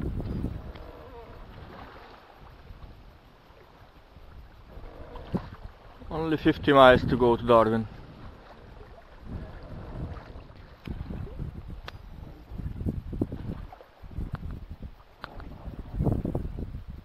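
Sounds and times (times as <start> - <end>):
wind buffeting microphone: 0.0 - 17.0
faint sharp clicks: 14.2 - 14.6, 15.2 - 15.6.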